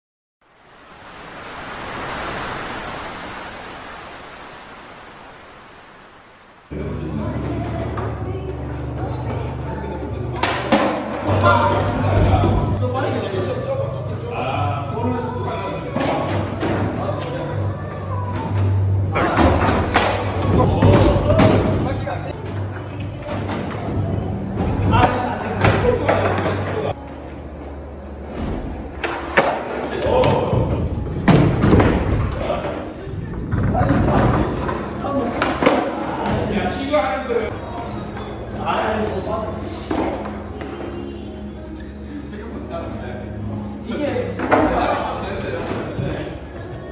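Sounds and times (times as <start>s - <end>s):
waves breaking: 0.4s - 6.7s.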